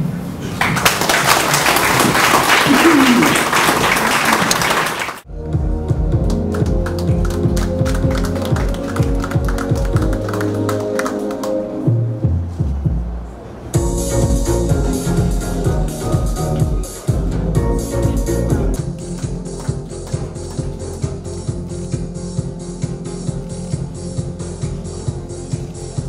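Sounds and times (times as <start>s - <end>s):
audience applauding: 0.5s - 5.3s, 6.2s - 11.8s
recorded music with bass beat: 5.3s - 10.9s, 13.8s - 26.0s.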